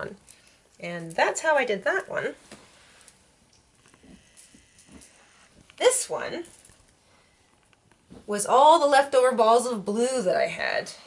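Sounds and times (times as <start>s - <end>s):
soft rustling of a blanket: 2.2s - 8.6s.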